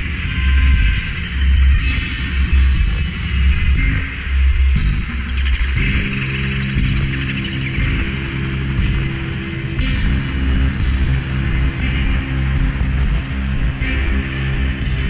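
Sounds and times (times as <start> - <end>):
music with heavy bass: 0.0 - 15.0.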